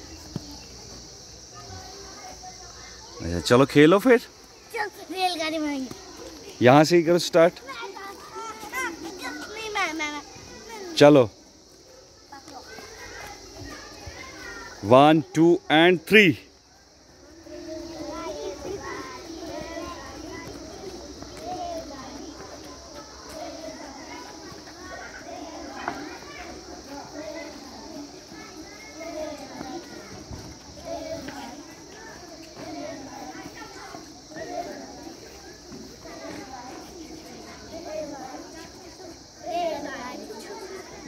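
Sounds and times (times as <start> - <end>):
girls chattering and calling out: 0.0 - 41.0.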